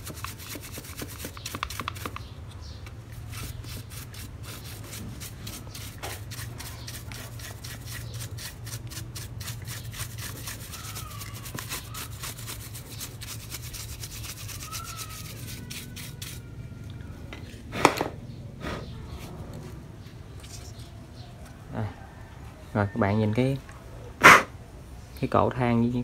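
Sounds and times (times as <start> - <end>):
brush scrubbing plastic: 0.0 - 2.3, 3.1 - 16.5.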